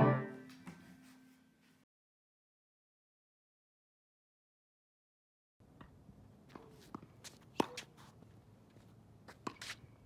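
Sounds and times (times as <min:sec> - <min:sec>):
tennis racket striking ball: 0:06.5 - 0:08.0.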